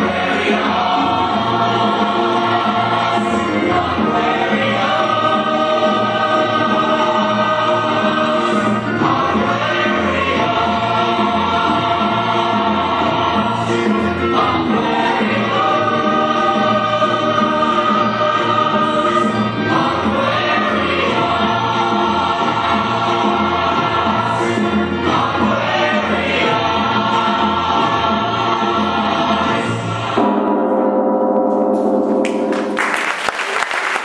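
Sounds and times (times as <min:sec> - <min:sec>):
choir singing pop music: 0:00.0 - 0:30.8.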